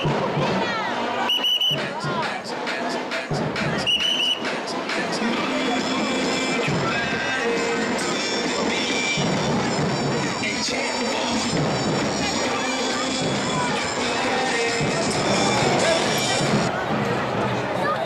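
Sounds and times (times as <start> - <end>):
carnival parade music: 0.0 - 18.0
crowd voices and chatter: 0.0 - 18.0
shrill whistle blasts: 1.2 - 1.9, 3.8 - 4.5.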